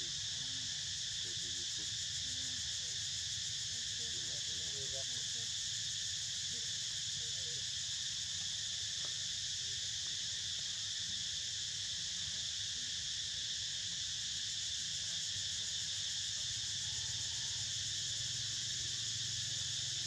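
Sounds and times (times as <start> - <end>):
insects droning: 0.0 - 20.0.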